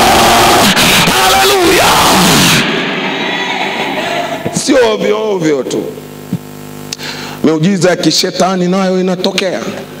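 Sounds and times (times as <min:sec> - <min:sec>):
man shouting through a microphone: 0:00.0 - 0:02.6
loud noise: 0:00.0 - 0:06.3
amplified hall background noise: 0:00.0 - 0:10.0.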